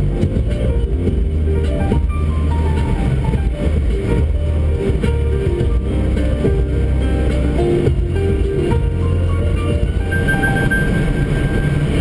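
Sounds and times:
deep bass line: 0:00.0 - 0:12.0
melody of held notes: 0:00.0 - 0:12.0.

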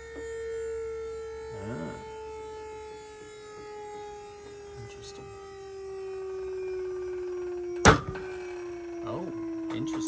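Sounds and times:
motor whine: 0:00.0 - 0:10.0.

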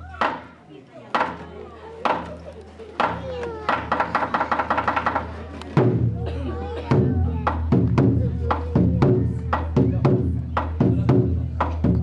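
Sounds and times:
drum strikes: 0:00.2 - 0:00.5, 0:03.0 - 0:12.0.

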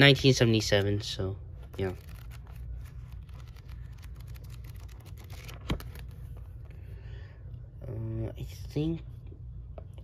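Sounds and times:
book pages flipping: 0:01.5 - 0:06.9.

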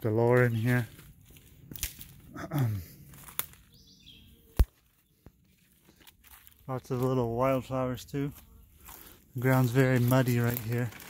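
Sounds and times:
footsteps through leaf litter: 0:00.0 - 0:11.0.

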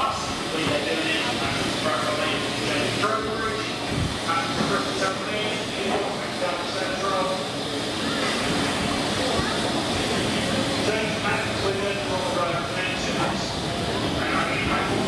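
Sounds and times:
people talking indistinctly: 0:00.0 - 0:15.0
steam locomotive hissing: 0:00.0 - 0:15.0.

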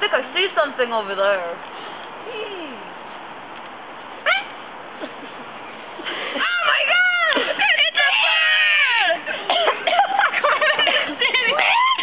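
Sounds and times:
high-pitched vocal call: 0:04.2 - 0:04.6.

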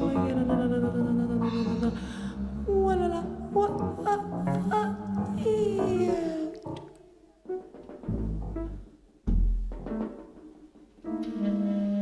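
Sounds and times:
woman singing jazz: 0:00.0 - 0:06.7
low instrumental accompaniment: 0:00.0 - 0:12.0.

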